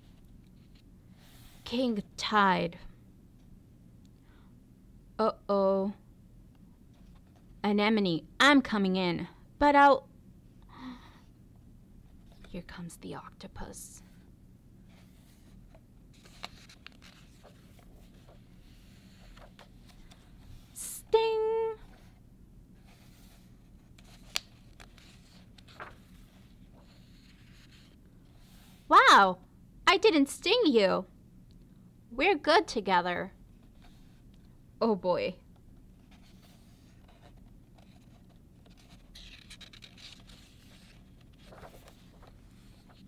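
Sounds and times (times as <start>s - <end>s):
paper page rustling: 14.9s - 20.8s, 22.8s - 28.7s, 36.0s - 43.0s.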